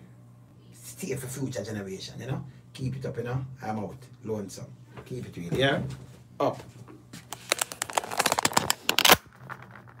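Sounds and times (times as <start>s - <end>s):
phone handling clicks and rustles: 7.3s - 9.2s.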